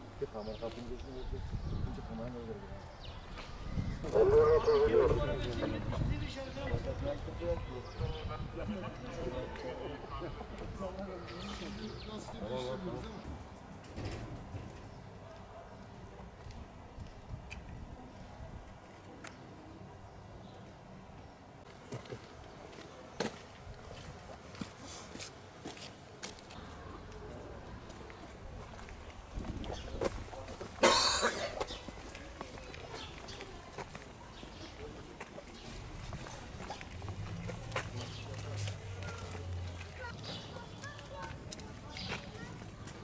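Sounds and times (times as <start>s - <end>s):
low outdoor background: 0.0s - 43.0s
low steady street rumble: 0.0s - 43.0s
person coughing: 30.8s - 31.6s.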